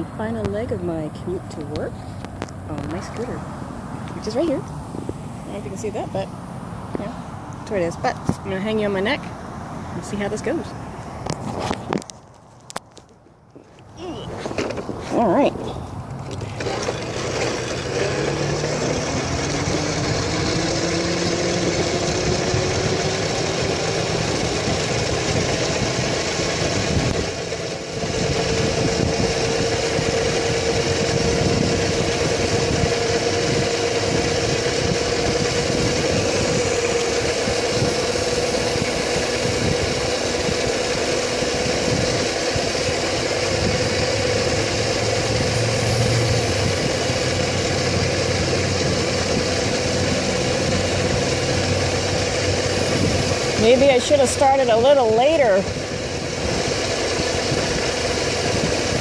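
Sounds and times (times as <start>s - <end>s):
wind noise on microphone: 0.0s - 12.9s, 14.0s - 59.0s
electric scooter motor whining: 4.1s - 4.7s, 13.6s - 59.0s.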